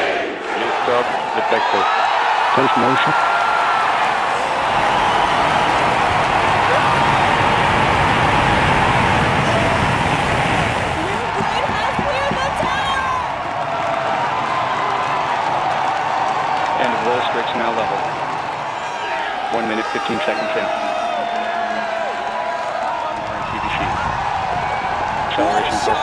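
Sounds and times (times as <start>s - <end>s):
crowd cheering and whooping: 0.0s - 26.0s
rocket engine rumble: 4.5s - 13.4s.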